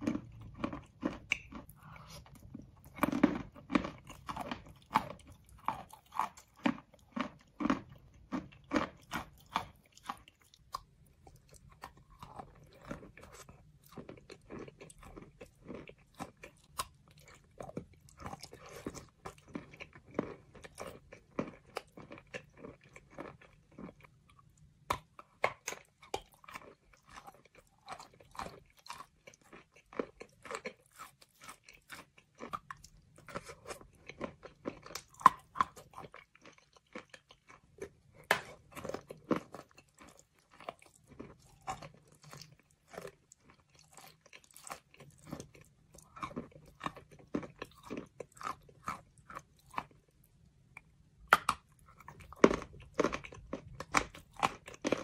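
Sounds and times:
chalk crunching and chewing: 0.0s - 55.0s.

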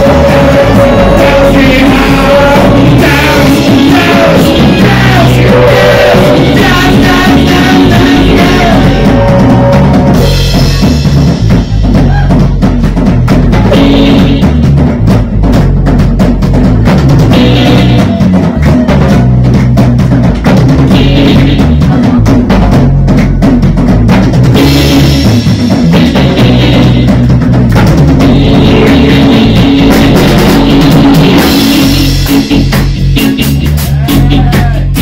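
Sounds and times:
fast drum strikes: 0.0s - 35.0s
live rock band: 0.0s - 35.0s.

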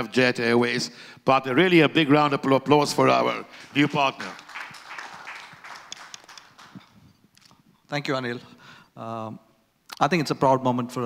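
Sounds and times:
audience applause: 3.5s - 7.0s.

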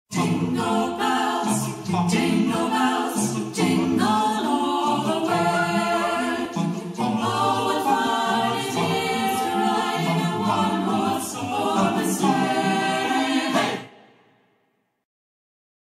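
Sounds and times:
a cappella group singing: 0.1s - 14.2s.

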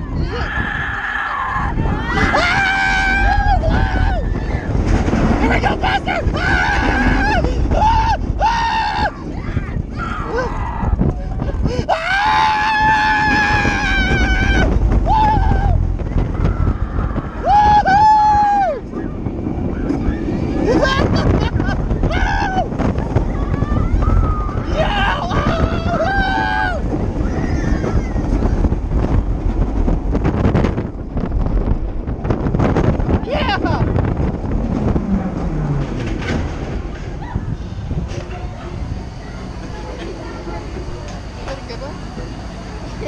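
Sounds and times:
wind rushing across microphone: 0.0s - 43.0s
riders screaming: 0.1s - 4.8s, 5.4s - 11.0s, 11.8s - 19.1s, 19.7s - 28.7s.

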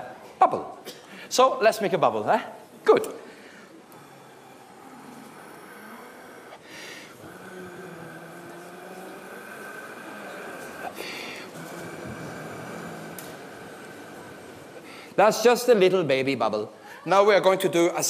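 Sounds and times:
man breathing in: 3.3s - 8.6s, 10.8s - 15.2s
long steady quiet blowing: 3.6s - 15.3s.

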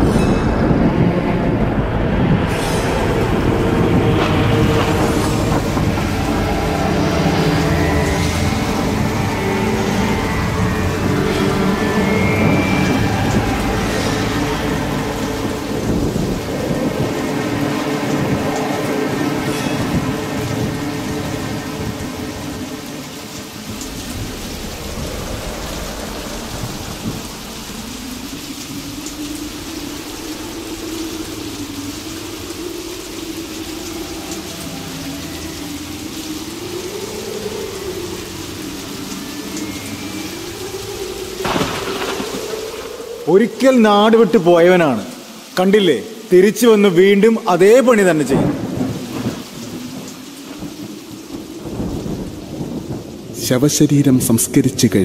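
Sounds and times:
thunder rumbling: 0.0s - 46.3s, 46.9s - 55.0s
background music: 0.0s - 53.5s
rain: 0.0s - 55.0s.

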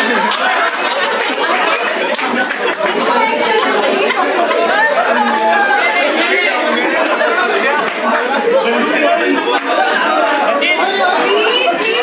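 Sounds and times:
men laughing: 0.0s - 10.6s
young men talking and shouting: 0.0s - 12.0s.

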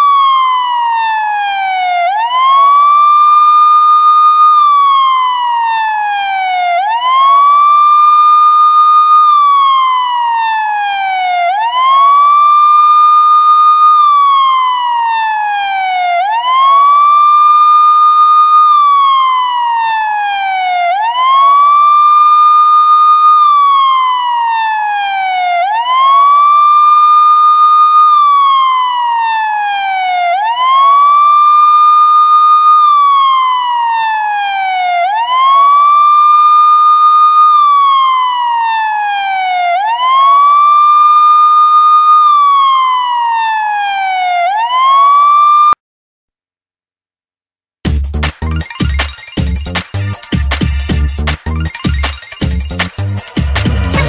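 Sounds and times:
loud siren wailing: 0.0s - 45.8s, 48.4s - 54.0s.

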